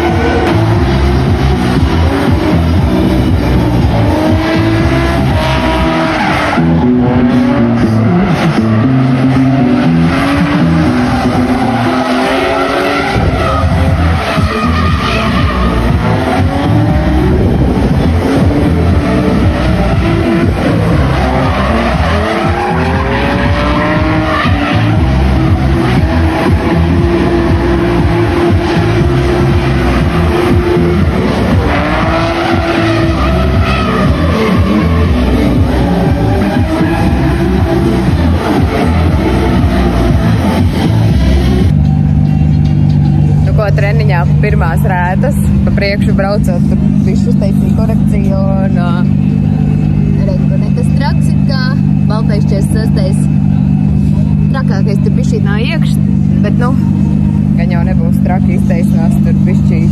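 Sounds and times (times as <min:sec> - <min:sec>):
tyres squealing and skidding: 0:00.0 - 0:58.1
car engines revving: 0:00.0 - 0:59.9.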